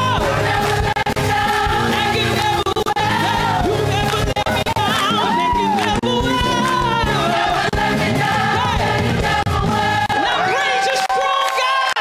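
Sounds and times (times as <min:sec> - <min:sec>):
woman singing into microphone: 0:00.0 - 0:07.8
choir singing gospel: 0:00.0 - 0:10.8.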